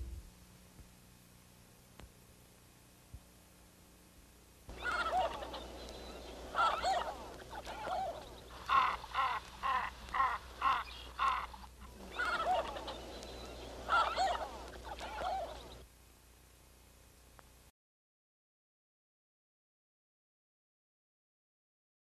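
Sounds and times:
birds calling: 4.7s - 15.9s.

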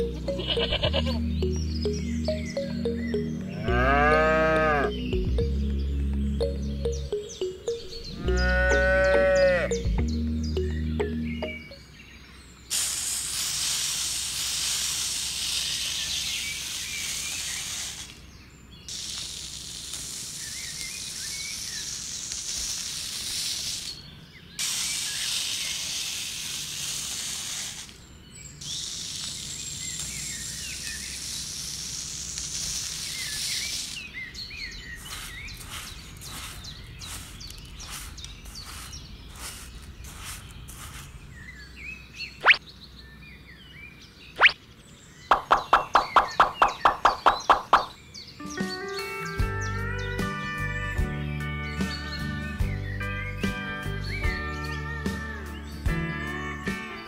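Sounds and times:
sand rustling and tapping: 12.7s - 41.8s, 45.3s - 48.0s
sand pouring into plastic tray: 35.0s - 41.1s
sharp clicks: 45.3s - 48.0s.

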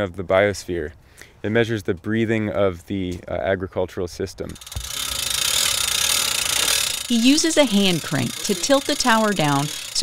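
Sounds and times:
hand-crank winch ratcheting: 4.5s - 10.0s.

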